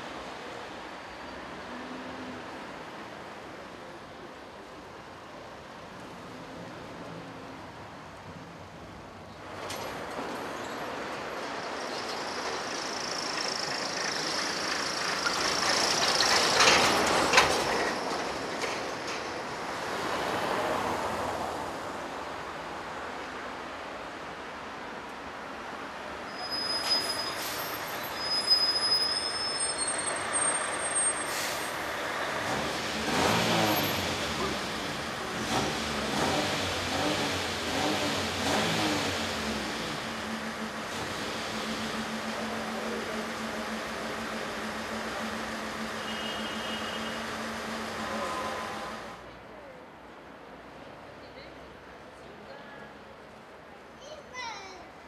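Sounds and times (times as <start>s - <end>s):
vehicles passing: 0.0s - 55.0s.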